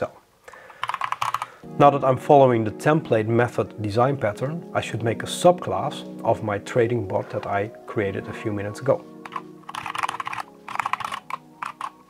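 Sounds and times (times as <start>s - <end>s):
typing on computer keyboard: 0.8s - 1.6s, 9.3s - 12.0s.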